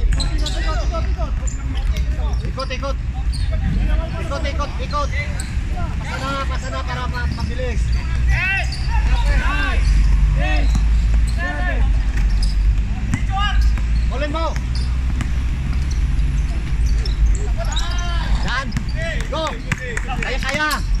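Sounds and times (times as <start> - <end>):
players shouting: 0.0 - 15.2, 15.8 - 21.0
basketball dribbling: 12.2 - 21.0.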